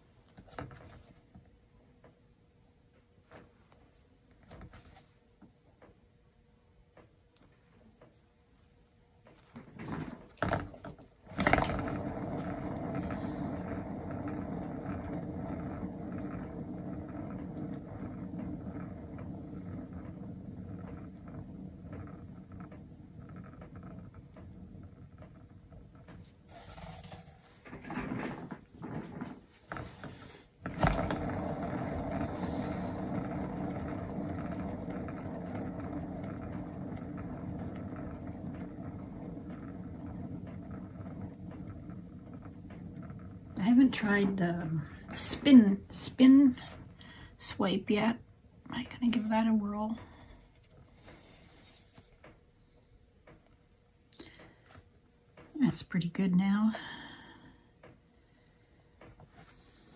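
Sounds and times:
turntable spinning rumble: 0:06.9 - 0:59.9.

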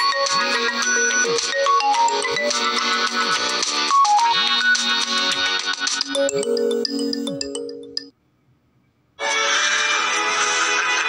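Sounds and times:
smartphone ringtone melody: 0:00.0 - 0:08.1.

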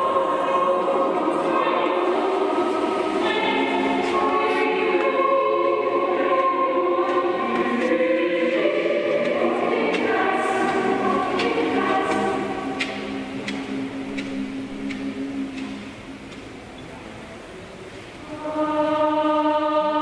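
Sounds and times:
choir singing sustained notes: 0:00.0 - 0:20.0.

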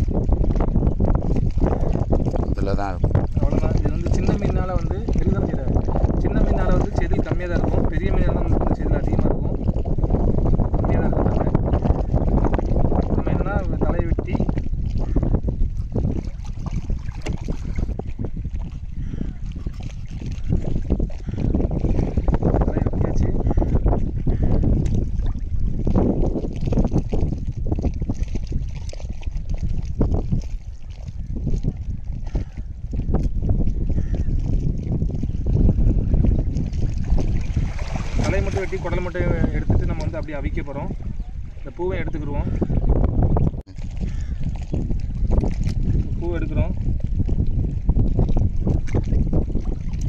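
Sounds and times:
sea waves washing on sand: 0:00.0 - 0:00.5, 0:36.5 - 0:42.7
wind rumbling on microphone: 0:00.0 - 0:50.0.

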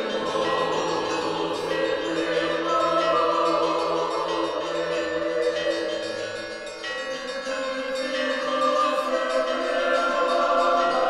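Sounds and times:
choir singing held chords: 0:00.0 - 0:11.0.

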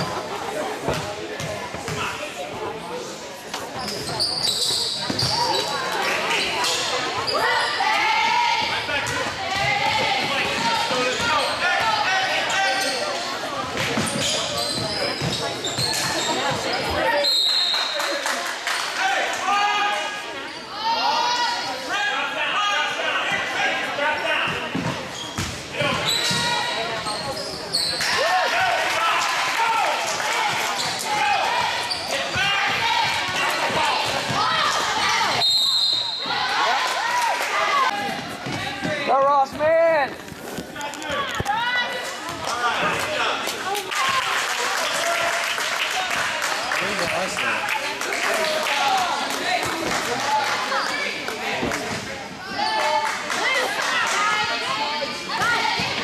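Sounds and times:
voices of players and spectators: 0:00.0 - 0:56.0
short high whistle blasts: 0:35.4 - 0:36.3.

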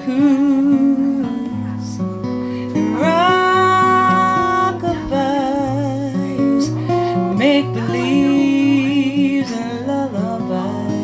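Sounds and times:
woman singing a lullaby: 0:00.0 - 0:01.8, 0:02.8 - 0:11.0
acoustic guitar strummed: 0:00.0 - 0:11.0.

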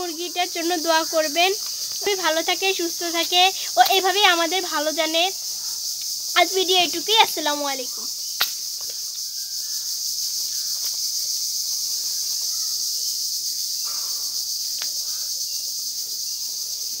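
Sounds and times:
insects chorus: 0:00.0 - 0:17.0.

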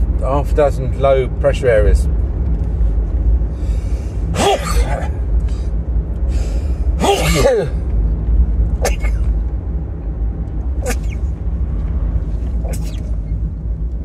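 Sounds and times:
car cabin rumble: 0:00.0 - 0:14.0
man sneezing: 0:04.4 - 0:05.2, 0:07.0 - 0:07.8, 0:08.8 - 0:09.3, 0:10.8 - 0:11.2, 0:12.6 - 0:13.0.

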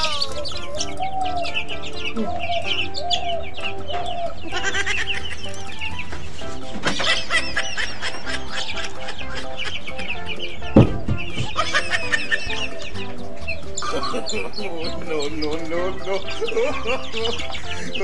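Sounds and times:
background music with held notes: 0:00.0 - 0:18.0
chickens clucking: 0:00.0 - 0:18.0
sharp thump: 0:10.8 - 0:11.6.

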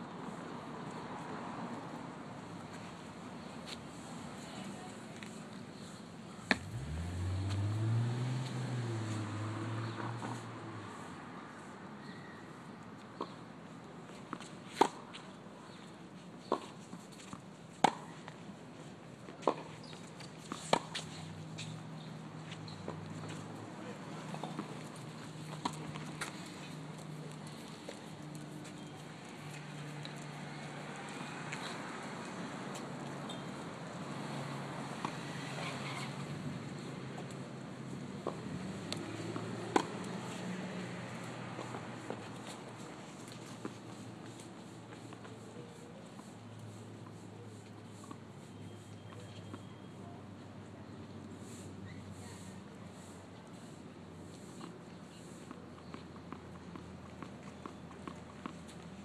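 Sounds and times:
light taps of shoes and ball: 0:03.6 - 0:05.6, 0:06.4 - 0:07.7, 0:14.1 - 0:34.2, 0:38.2 - 0:50.4, 0:54.3 - 0:59.0.

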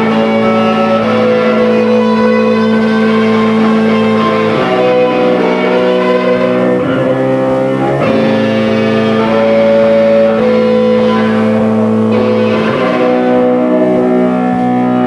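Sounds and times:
bass guitar: 0:00.0 - 0:15.0
electric guitar chords: 0:00.0 - 0:15.0.

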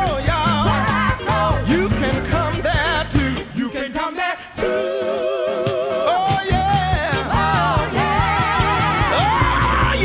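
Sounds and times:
gospel vocal group singing: 0:00.0 - 0:10.0.

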